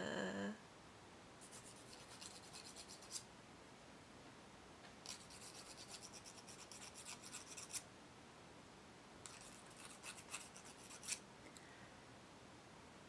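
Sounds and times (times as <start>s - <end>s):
fingernails being filed: 5.1s - 7.8s, 9.3s - 11.2s.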